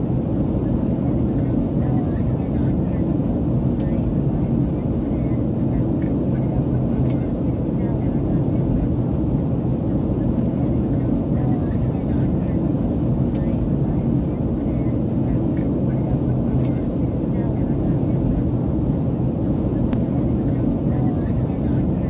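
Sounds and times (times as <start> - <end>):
jet engine cabin rumble: 0.0 - 22.0.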